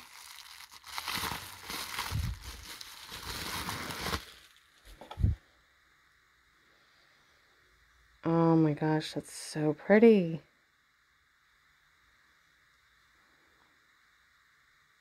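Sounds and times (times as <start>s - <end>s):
bubble wrap crinkling: 0.0s - 5.0s.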